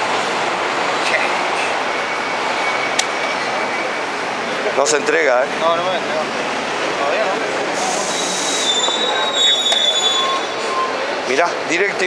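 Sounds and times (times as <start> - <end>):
street traffic passing: 0.0 - 12.0
high-pitched squeal: 7.8 - 11.1.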